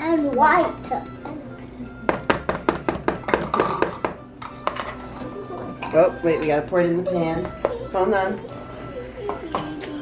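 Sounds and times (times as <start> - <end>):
background music: 0.0 - 10.0
spatula knocking plastic bowl: 2.1 - 4.8.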